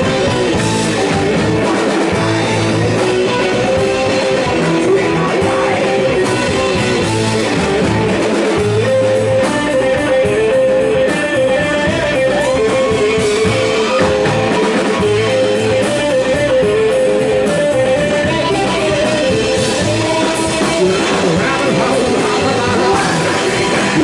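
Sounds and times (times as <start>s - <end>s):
drums: 0.0s - 24.0s
electric guitar: 0.0s - 24.0s
upright bass: 0.0s - 24.0s.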